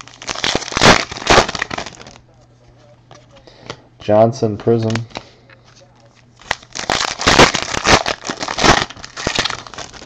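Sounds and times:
foil wrapper tearing and crinkling: 0.0 - 2.2, 6.4 - 10.0.

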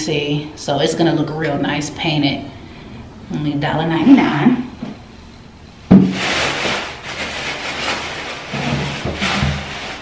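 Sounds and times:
plastic bag rustling: 5.9 - 10.0.

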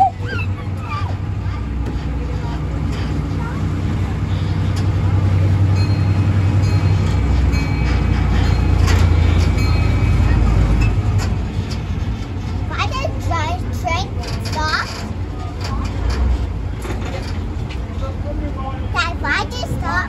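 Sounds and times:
ride train rumbling: 0.0 - 20.0.

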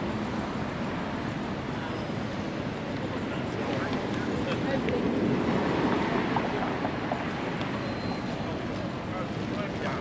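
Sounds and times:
traffic rumble: 0.0 - 10.0
faint voices of passers-by: 0.2 - 10.0.

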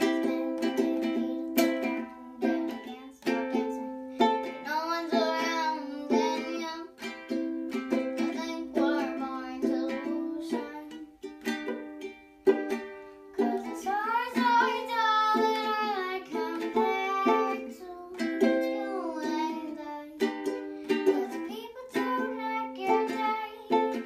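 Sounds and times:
girl singing: 0.0 - 24.0
ukulele strummed chords: 0.0 - 24.0.

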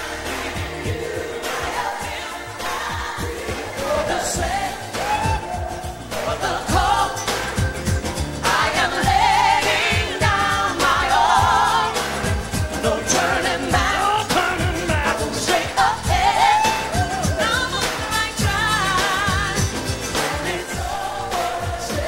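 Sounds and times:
band with steady drum beat: 0.0 - 22.0
group singing pop song: 0.0 - 22.0.

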